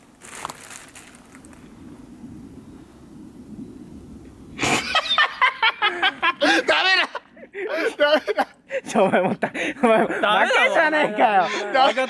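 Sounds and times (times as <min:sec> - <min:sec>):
young men laughing: 0:04.6 - 0:12.0.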